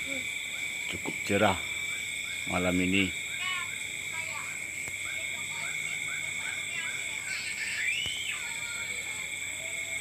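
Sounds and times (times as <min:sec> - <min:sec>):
crickets droning: 0:00.0 - 0:10.0
short insect calls: 0:00.0 - 0:10.0.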